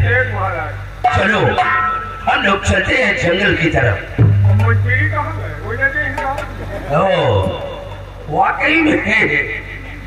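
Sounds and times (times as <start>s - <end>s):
faint voices: 0.0s - 10.0s
low droning tone: 3.9s - 8.4s.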